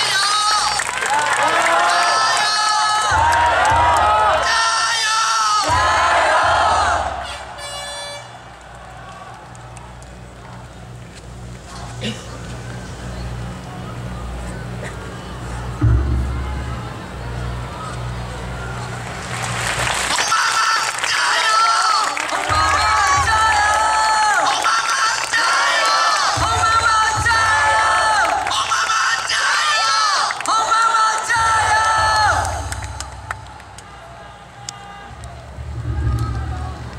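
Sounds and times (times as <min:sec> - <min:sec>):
outdoor crowd: 0:00.0 - 0:36.9.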